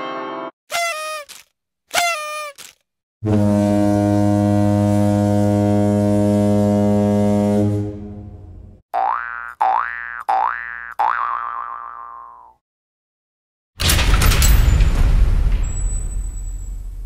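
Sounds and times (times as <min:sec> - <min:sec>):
low horn-like blast: 0:03.2 - 0:08.8
rising boing sounds: 0:09.0 - 0:12.6.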